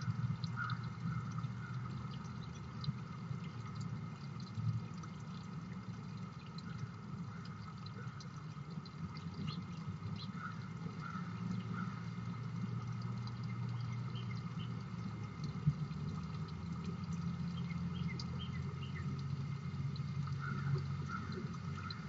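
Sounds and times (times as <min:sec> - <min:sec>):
low rumble and hum: 0:00.0 - 0:22.0
small birds chirping: 0:09.1 - 0:12.1, 0:13.4 - 0:15.0, 0:17.4 - 0:19.4.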